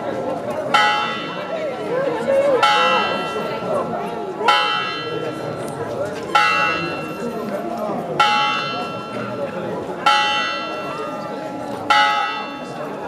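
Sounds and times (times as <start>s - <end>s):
crowd murmuring: 0.0s - 13.0s
church bell tolling: 0.7s - 1.8s, 2.5s - 5.6s, 6.3s - 7.5s, 8.1s - 13.0s.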